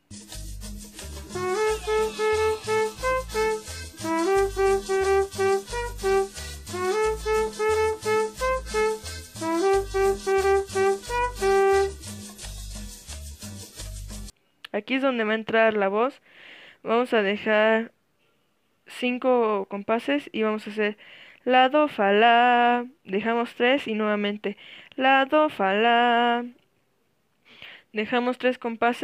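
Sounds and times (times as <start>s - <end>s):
trumpet short repeated notes: 1.3s - 12.1s.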